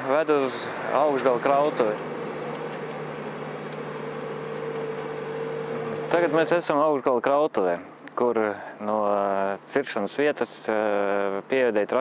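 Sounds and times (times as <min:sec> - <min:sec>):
diesel engine humming: 0:00.0 - 0:06.8.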